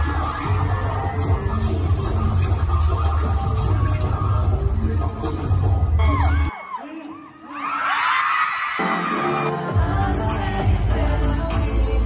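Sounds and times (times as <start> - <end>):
pop concert music with booming bass: 0.0 - 12.0.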